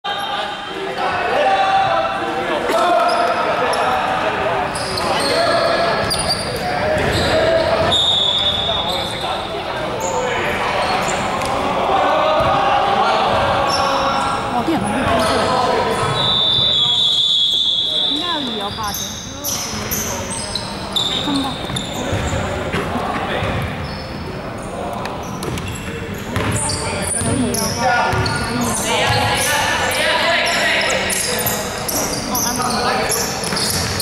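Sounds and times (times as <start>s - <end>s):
indistinct voices echoing: 0.0s - 34.0s
sneaker squeaks on hardwood: 4.8s - 9.4s, 15.2s - 22.6s, 23.4s - 24.2s, 25.2s - 29.6s, 30.4s - 34.0s
basketball bouncing: 21.6s - 22.4s, 26.4s - 26.6s, 28.1s - 29.3s.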